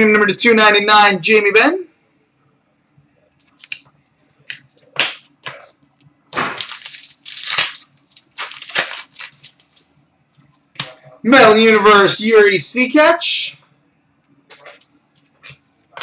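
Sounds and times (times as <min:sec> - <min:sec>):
cards rustling: 0:03.3 - 0:09.9.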